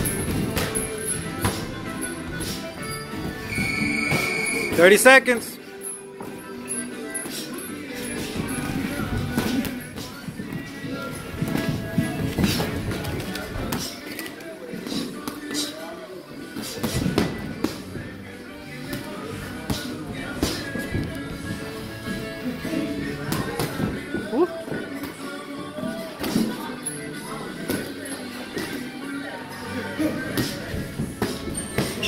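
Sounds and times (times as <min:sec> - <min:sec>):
background music: 0:00.0 - 0:32.0
boxing gloves slapping and thudding: 0:08.1 - 0:14.0, 0:16.6 - 0:18.0.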